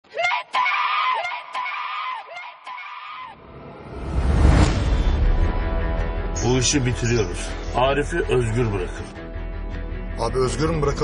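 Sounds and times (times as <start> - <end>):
rising whoosh: 3.4 - 6.2.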